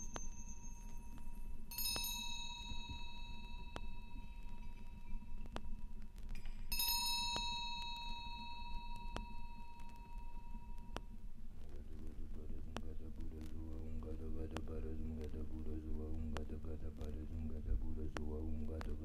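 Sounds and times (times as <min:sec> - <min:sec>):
faint record click: 0:00.0 - 0:02.1, 0:03.7 - 0:19.0
metal chime ringing: 0:00.0 - 0:05.5, 0:06.7 - 0:11.0
vinyl record surface noise: 0:00.0 - 0:19.0.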